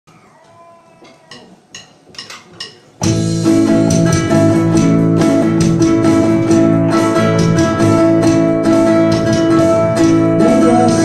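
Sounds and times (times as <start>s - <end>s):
band playing a song: 3.0s - 11.0s.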